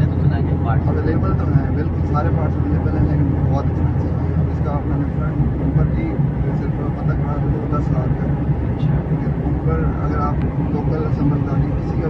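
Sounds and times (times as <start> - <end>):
car road and engine drone: 0.0 - 12.0
voices talking: 0.0 - 12.0.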